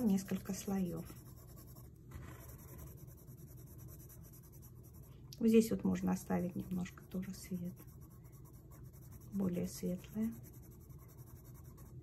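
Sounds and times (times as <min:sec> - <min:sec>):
coloured pencil scratching on paper: 0:00.0 - 0:12.0.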